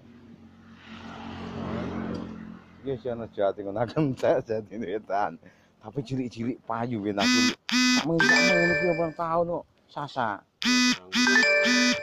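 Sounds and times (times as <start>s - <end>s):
vehicle passing by: 0.0s - 3.7s.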